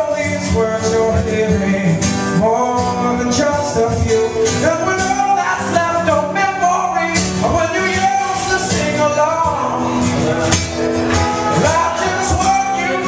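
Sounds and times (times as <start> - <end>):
acoustic guitar strumming: 0.0 - 13.0
man singing: 0.0 - 13.0.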